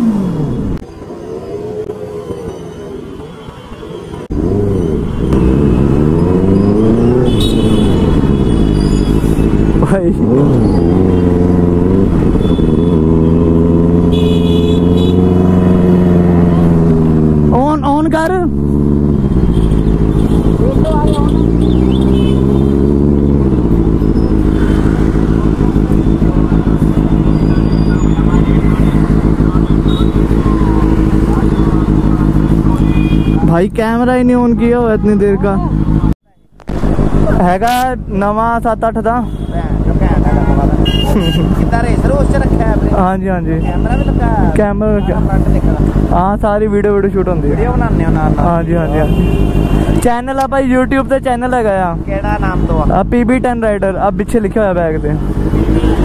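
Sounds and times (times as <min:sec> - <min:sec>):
motorcycle engine revving: 0:00.0 - 0:02.4, 0:04.2 - 0:56.0.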